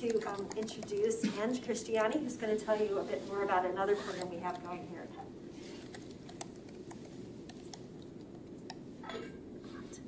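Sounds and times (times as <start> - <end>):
faint clicks and taps: 0.0 - 1.1.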